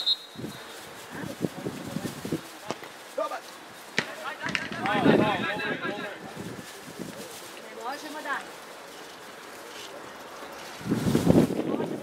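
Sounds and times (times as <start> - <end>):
wind buffeting microphone: 0.3 - 2.6, 4.1 - 7.4, 10.2 - 12.0.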